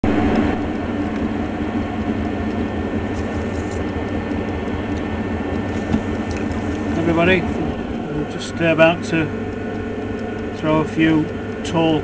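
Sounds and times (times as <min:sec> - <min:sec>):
potter's wheel motor hum: 0:00.0 - 0:12.0.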